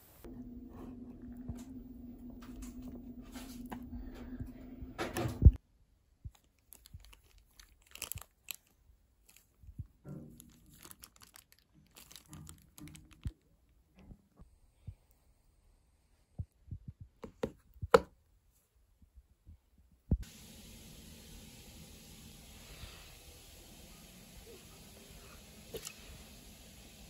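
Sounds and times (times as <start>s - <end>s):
low hum: 0.0s - 5.6s, 20.1s - 27.0s
plastic bag crinkling and squishing: 6.3s - 13.5s.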